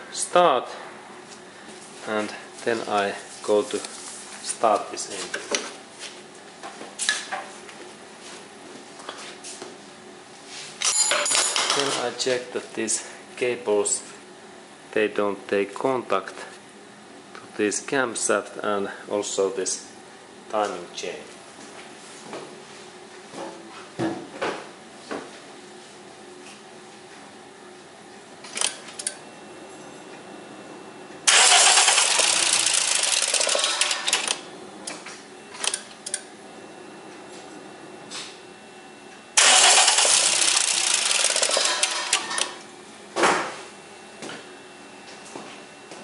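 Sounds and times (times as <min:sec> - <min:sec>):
car engine starting and running: 0:31.3 - 0:34.4, 0:39.4 - 0:42.6.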